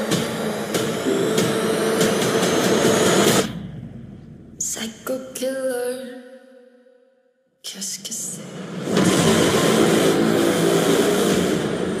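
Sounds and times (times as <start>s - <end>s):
harsh low buzzing drone: 0.0s - 4.6s, 8.5s - 12.0s.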